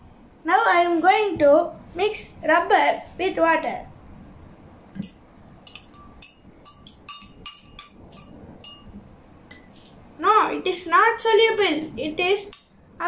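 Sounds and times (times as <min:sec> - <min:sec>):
spoon clinking against glass: 0:05.0 - 0:08.9, 0:09.5 - 0:09.8.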